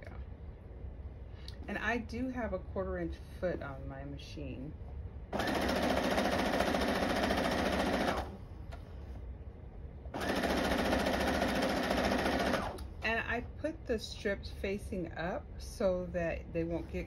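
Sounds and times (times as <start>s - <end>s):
electric sewing machine stitching: 5.4s - 8.4s, 10.2s - 12.9s.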